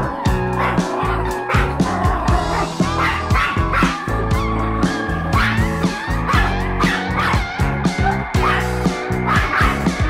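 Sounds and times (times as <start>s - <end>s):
background music with steady beat: 0.0s - 10.0s
small dog barking: 0.6s - 1.7s, 2.5s - 4.0s, 5.4s - 5.7s, 6.3s - 8.7s, 9.3s - 9.8s.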